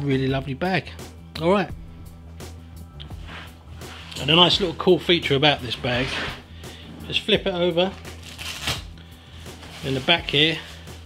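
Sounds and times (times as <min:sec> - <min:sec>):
fabric rustling: 0:03.1 - 0:11.0.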